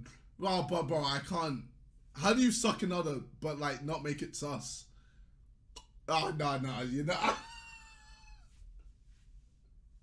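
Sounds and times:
man laughing: 7.0 - 8.6
man squealing: 7.1 - 8.5.

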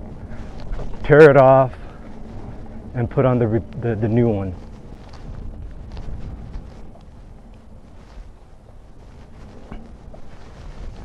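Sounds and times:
electric unicycle rolling rumble: 0.0 - 11.0
wind buffeting microphone: 0.0 - 11.0.

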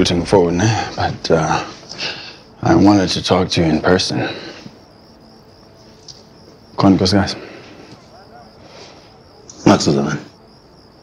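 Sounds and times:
high-pitched chirring: 2.3 - 11.0
man speaking: 6.8 - 7.5, 9.5 - 10.4.

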